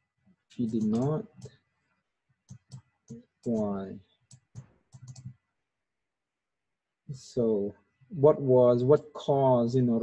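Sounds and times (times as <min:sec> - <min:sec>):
faint clicks: 0:04.3 - 0:05.4.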